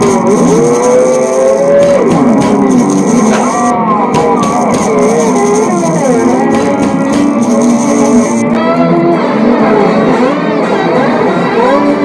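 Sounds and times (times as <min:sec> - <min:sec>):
drums steady beat: 0:00.0 - 0:08.5
guitar: 0:00.0 - 0:12.0.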